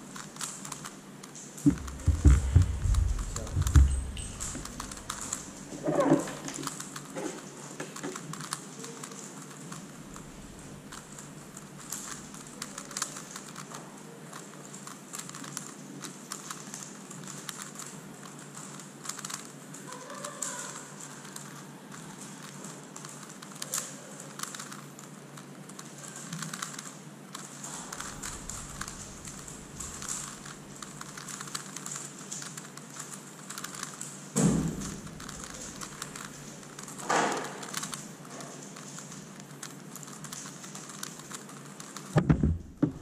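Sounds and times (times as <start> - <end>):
puzzle cube plastic clicking: 0.1 - 43.0
dull thump: 1.7 - 5.3, 42.2 - 43.0.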